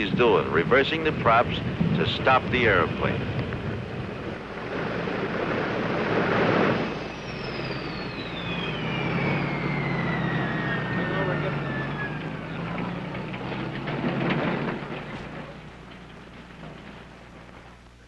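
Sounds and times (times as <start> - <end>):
piston engines running down: 0.0 - 18.0.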